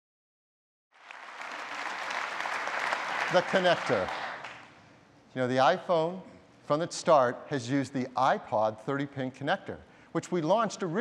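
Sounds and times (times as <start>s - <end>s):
audience applause: 1.0s - 4.6s.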